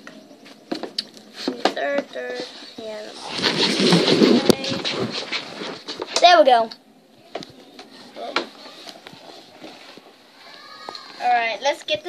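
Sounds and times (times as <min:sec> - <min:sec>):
faint background voices: 0:07.0 - 0:12.0.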